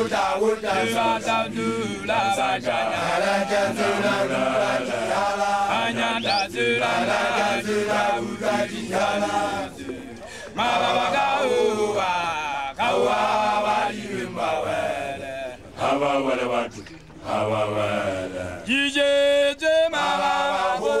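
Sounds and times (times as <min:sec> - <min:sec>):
men chanting in unison: 0:00.0 - 0:21.0.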